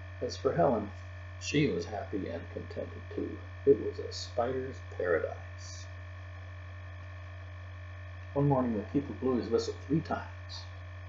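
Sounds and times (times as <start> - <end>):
mains hum: 0.0 - 11.0.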